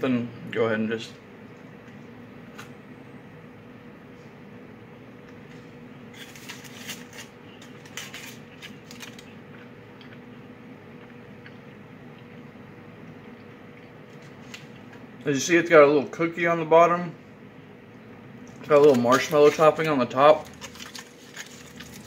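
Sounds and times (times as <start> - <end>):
cookie crackling as bitten and chewed: 6.1 - 12.4, 18.5 - 22.0.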